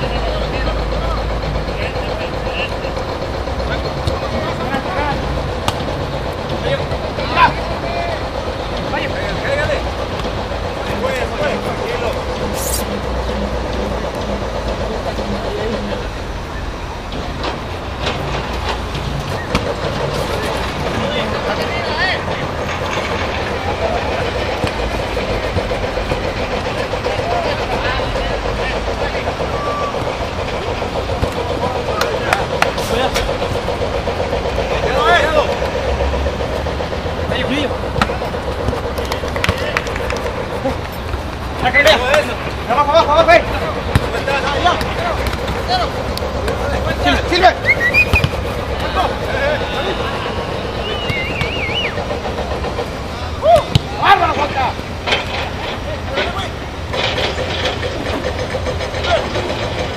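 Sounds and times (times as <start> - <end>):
footballers shouting: 18.9 - 55.0.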